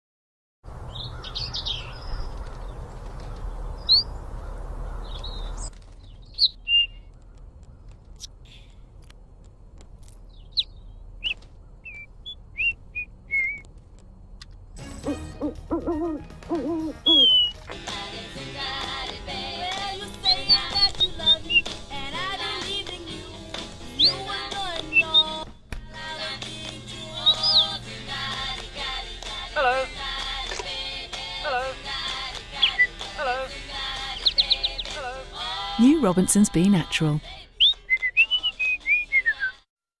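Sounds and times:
small bird chirping: 0:00.9 - 0:08.8, 0:10.2 - 0:13.7, 0:17.0 - 0:17.6, 0:20.2 - 0:21.8, 0:23.9 - 0:25.4, 0:27.1 - 0:27.8, 0:34.1 - 0:35.0, 0:37.6 - 0:39.4
whistled tune: 0:11.2 - 0:13.7, 0:15.0 - 0:17.8, 0:24.9 - 0:25.4, 0:32.6 - 0:33.0, 0:37.6 - 0:39.7
pop song with singing: 0:17.7 - 0:39.6.

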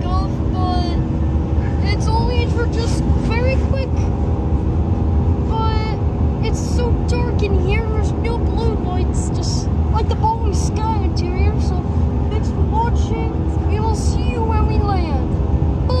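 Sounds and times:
jet engines rumbling in cabin: 0:00.0 - 0:16.0.

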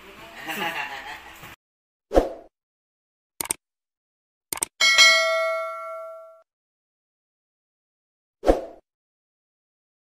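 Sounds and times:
double mouse clicks: 0:03.4 - 0:03.6, 0:04.5 - 0:04.7
bell-like ding: 0:04.8 - 0:06.5.

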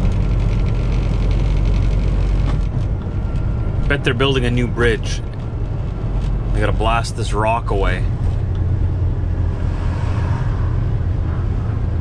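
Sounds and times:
diesel truck engine rumbling: 0:00.0 - 0:12.0
road noise: 0:00.0 - 0:12.0.

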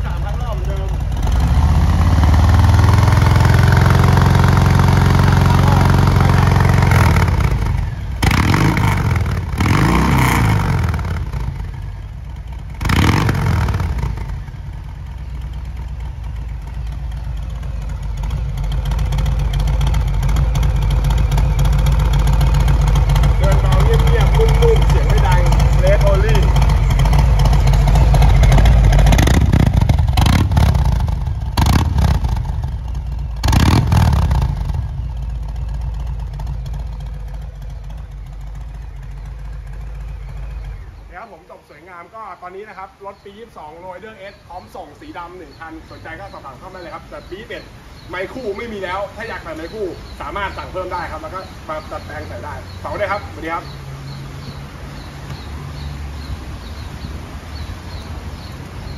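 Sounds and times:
motorcycle engine idling and revving: 0:00.0 - 0:58.9.

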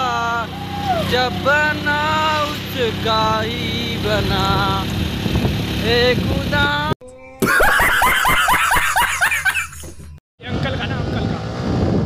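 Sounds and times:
high-pitched voice singing: 0:07.0 - 0:07.6.

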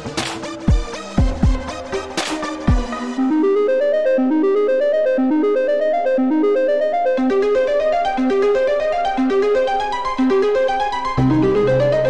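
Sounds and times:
synthesizer arpeggio: 0:00.1 - 0:12.0.

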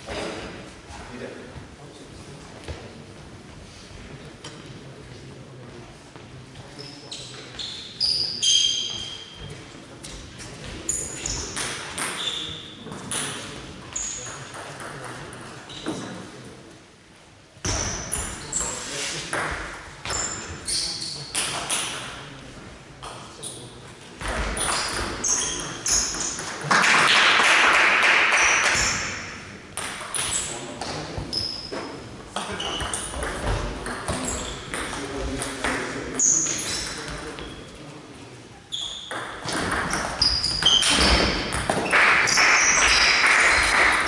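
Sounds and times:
voices in a large hall: 0:00.0 - 0:44.0.

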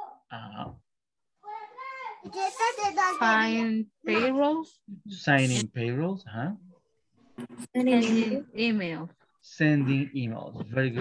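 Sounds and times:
person speaking over video call: 0:04.9 - 0:06.6.

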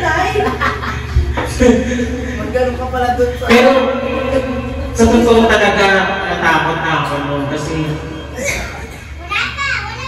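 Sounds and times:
children talking and calling out: 0:08.4 - 0:10.0.

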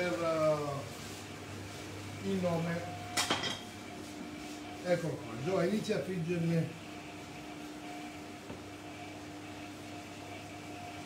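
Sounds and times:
low appliance hum: 0:00.0 - 0:11.0.

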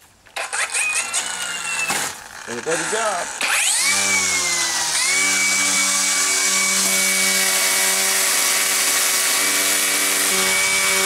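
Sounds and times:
string trimmer motor whining: 0:00.2 - 0:11.0.

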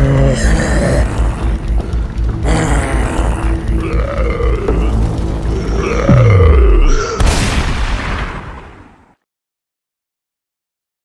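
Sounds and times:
drawn-out groaning cries: 0:00.0 - 0:07.2
low pulsing horror music: 0:00.0 - 0:08.4.

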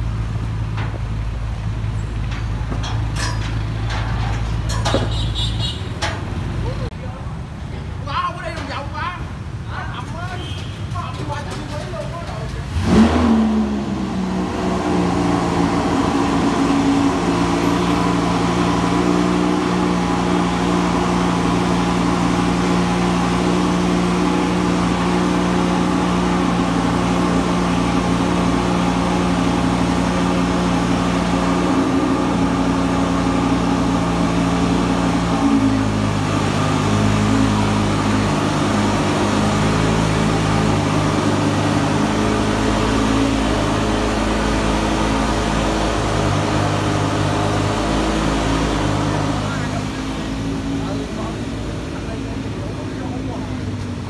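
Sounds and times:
sports car engine idling: 0:11.7 - 0:54.0.

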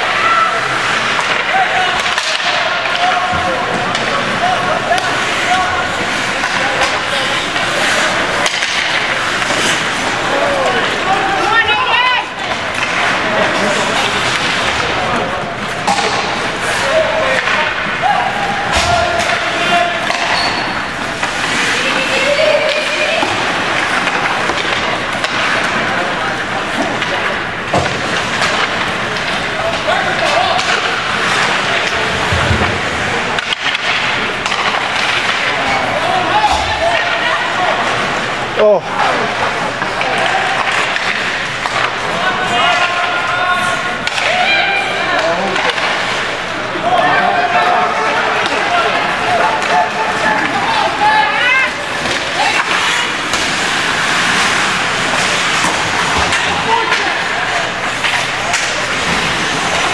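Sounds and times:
skates scraping on ice: 0:00.0 - 0:36.4, 0:45.0 - 0:59.9
hockey sticks and puck clacking: 0:00.0 - 0:59.9
spectators shouting and talking: 0:00.0 - 0:59.9.

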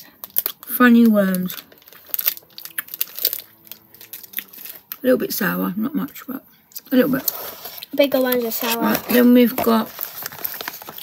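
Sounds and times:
plastic packet crinkling: 0:00.1 - 0:05.0, 0:06.7 - 0:11.0.

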